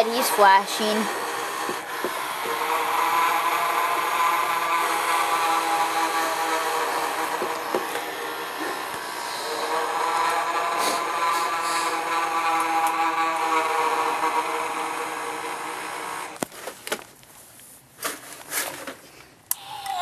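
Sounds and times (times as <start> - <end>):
small electric motor whirring: 0.0 - 16.4.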